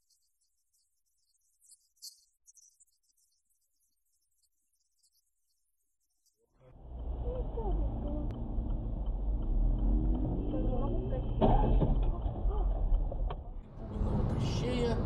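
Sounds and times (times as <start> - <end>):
car engine and road rumble: 6.6 - 15.0
indistinct voices: 6.6 - 15.0.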